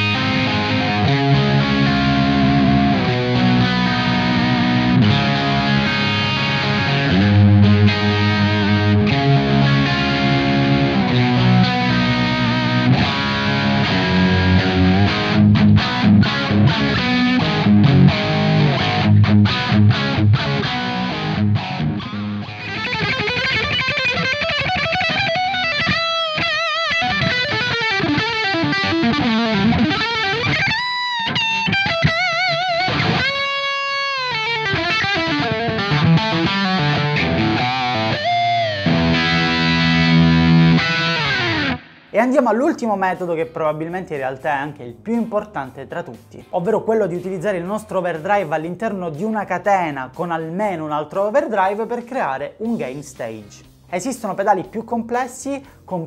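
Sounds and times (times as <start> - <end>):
electric guitar lead solo: 0.0 - 42.2
overdriven electric guitar riffs: 0.0 - 42.2, 53.5 - 53.9.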